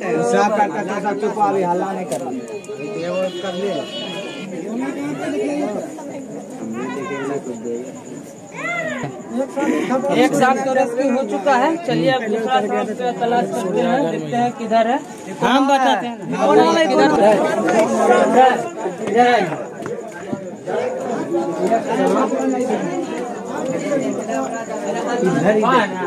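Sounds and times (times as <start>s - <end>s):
crowd chatter: 0.0s - 26.0s
men talking over one another: 0.0s - 26.0s.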